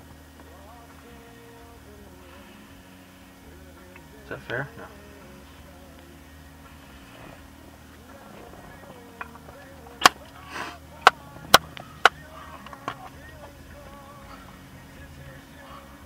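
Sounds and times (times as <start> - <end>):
low hum inside car: 0.0 - 16.0.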